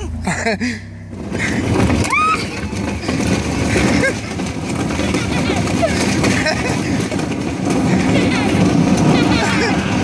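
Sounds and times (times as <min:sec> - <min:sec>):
plastic toy scraping on asphalt: 0:01.4 - 0:10.0
rising whoop: 0:02.0 - 0:02.9.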